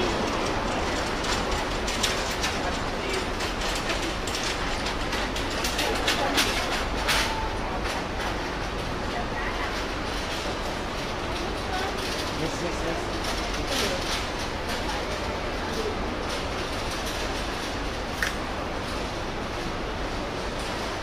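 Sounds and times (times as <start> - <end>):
sharp clicks and clatter: 0.0 - 9.0, 9.6 - 19.1
crowd murmur: 0.0 - 21.0
traffic rumble: 0.0 - 21.0.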